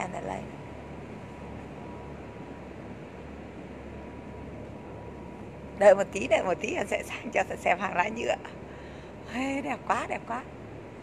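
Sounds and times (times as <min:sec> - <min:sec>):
faint high whine: 0:00.0 - 0:11.0
low hum: 0:00.0 - 0:11.0.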